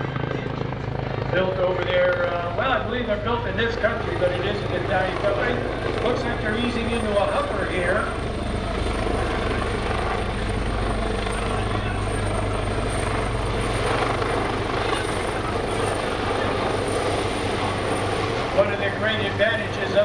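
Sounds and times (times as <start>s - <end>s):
helicopter flying past: 0.0s - 20.0s.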